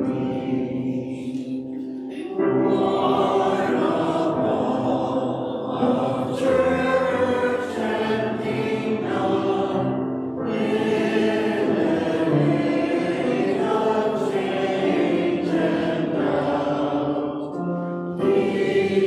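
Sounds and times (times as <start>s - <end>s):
church choir singing a hymn: 0.0s - 19.0s
grand piano accompaniment: 0.0s - 19.0s.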